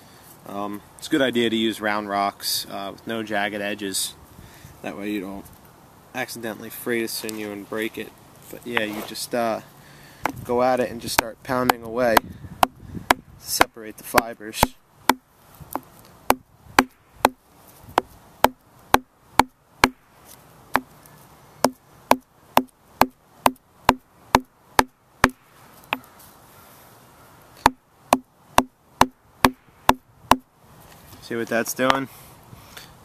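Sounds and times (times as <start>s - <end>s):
stone pounding on stone: 14.6s - 17.4s, 18.0s - 20.0s, 21.6s - 25.4s, 27.6s - 30.5s.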